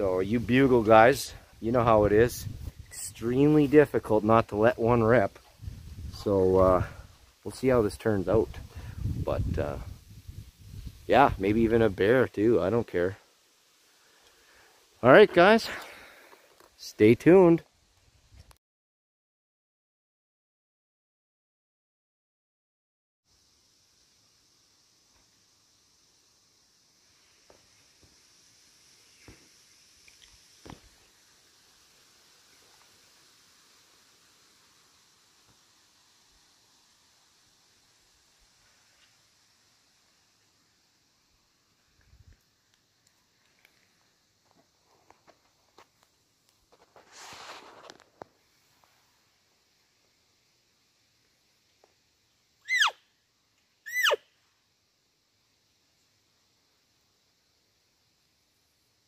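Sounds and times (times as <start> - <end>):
faint high hiss: 0.0 - 18.6, 23.3 - 59.0
elk call mews: 52.7 - 53.0, 53.9 - 54.2.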